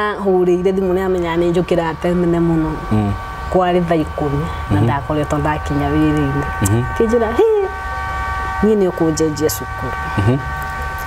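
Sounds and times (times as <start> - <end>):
voice: 0.0 - 7.8, 8.6 - 10.5
constant low rumble: 0.0 - 11.0
held high tones: 1.3 - 11.0.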